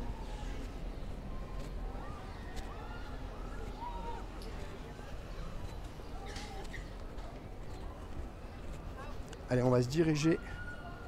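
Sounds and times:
outdoor background noise: 0.0 - 11.0
footsteps on stone paving: 0.5 - 9.3.

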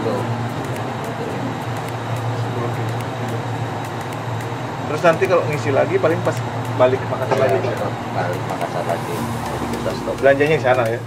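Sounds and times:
fans blowing cold air: 0.0 - 11.0
refrigeration unit hum: 0.0 - 11.0.

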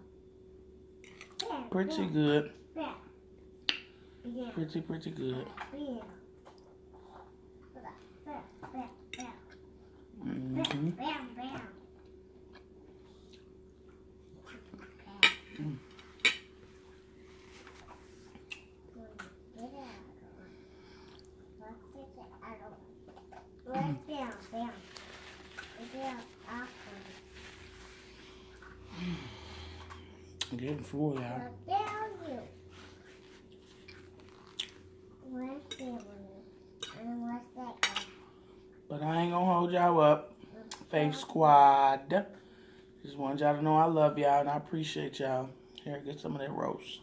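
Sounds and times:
faint steady hum: 0.0 - 47.0
quiet chewing: 23.1 - 28.8, 32.9 - 35.0.

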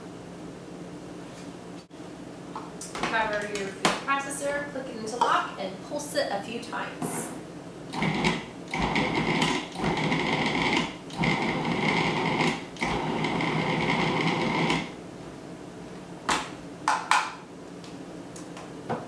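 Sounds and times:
food processor motor whining: 8.0 - 14.9.

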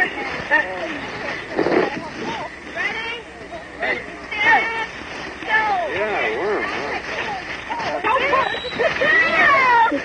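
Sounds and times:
voices crying out: 0.0 - 10.0.

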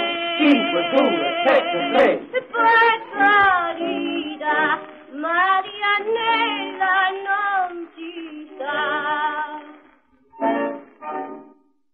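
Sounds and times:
woman singing: 0.0 - 9.9
tango orchestra: 10.4 - 11.6.

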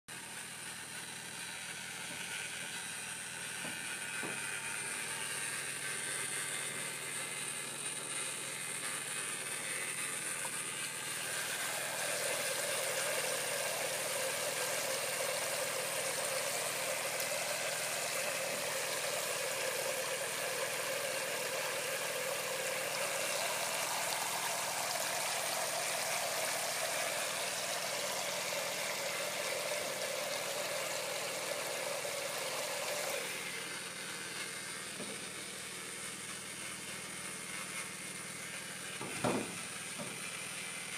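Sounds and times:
water spraying into metal basin: 0.9 - 40.9.

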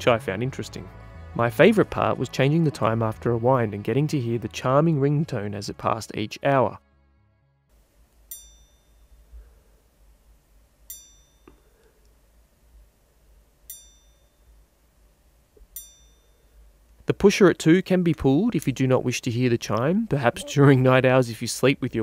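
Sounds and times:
watch chime ringing: 8.3 - 9.3, 10.9 - 11.7, 13.7 - 14.6, 15.7 - 16.6.

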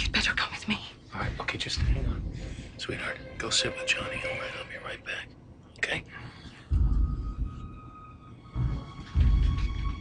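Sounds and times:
deep low rumble: 1.1 - 4.6.

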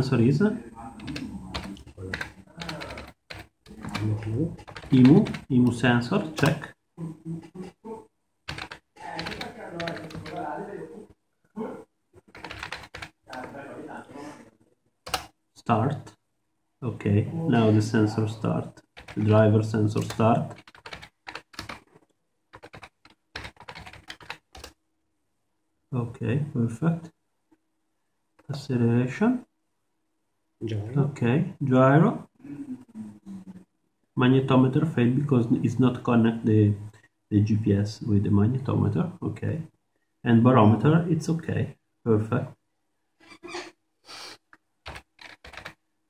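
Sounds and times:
computer keyboard typing: 1.0 - 6.7, 8.5 - 10.5, 12.2 - 13.6, 15.0 - 15.4, 18.8 - 21.9, 22.5 - 24.8, 44.8 - 45.8.

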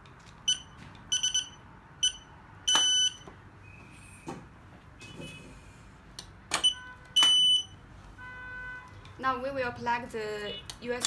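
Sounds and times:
high-pitched reader beeps: 0.5 - 3.2.

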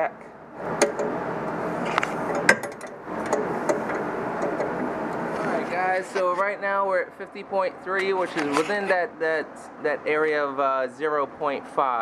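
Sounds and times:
steady background noise: 0.0 - 12.0
metal handling noise and clicks: 1.8 - 5.5.

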